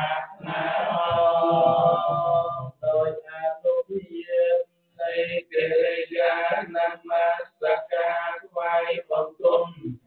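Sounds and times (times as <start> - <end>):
monks chanting: 0.0 - 10.0.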